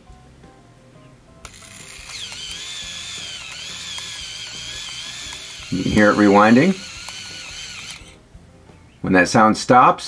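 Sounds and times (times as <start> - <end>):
camera click: 1.4 - 8.2
camera motor rewinding film: 1.4 - 8.2.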